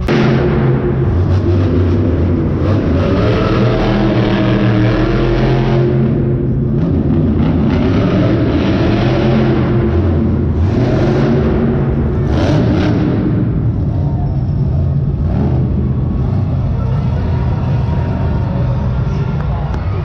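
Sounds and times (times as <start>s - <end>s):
monster truck engines rumbling: 0.0s - 20.0s.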